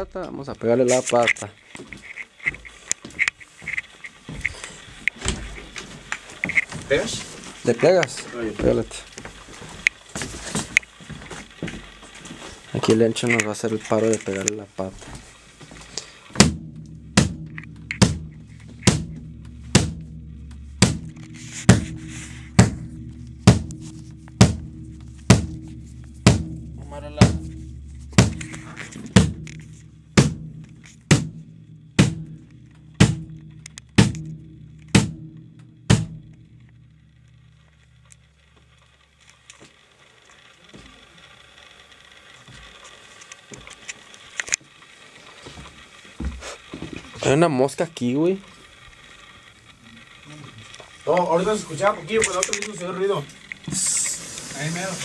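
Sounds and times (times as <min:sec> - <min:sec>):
kick drum hits: 0:16.4 - 0:38.0.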